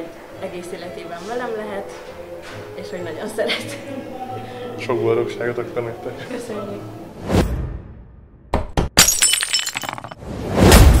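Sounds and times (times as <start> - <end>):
music: 0.0 - 8.5
glass shattering: 9.0 - 10.2.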